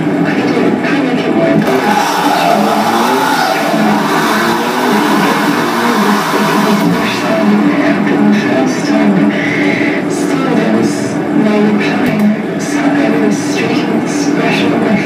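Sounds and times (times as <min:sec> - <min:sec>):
dense electronic noise: 0:01.6 - 0:10.2.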